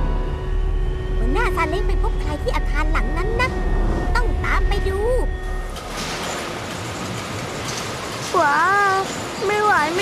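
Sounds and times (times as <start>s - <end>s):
steady mechanical rumble: 0.0s - 10.0s.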